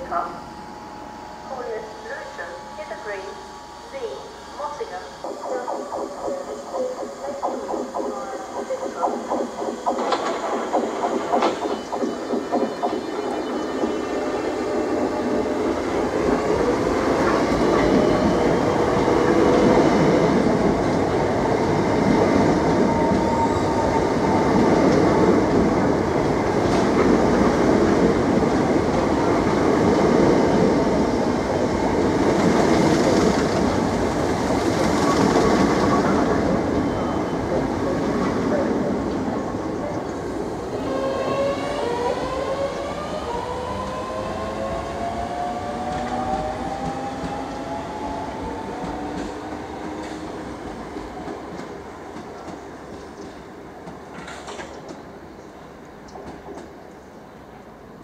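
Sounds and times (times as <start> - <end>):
train traction motor whine: 0.0 - 51.7
train wheels rumbling on rails: 4.6 - 57.2.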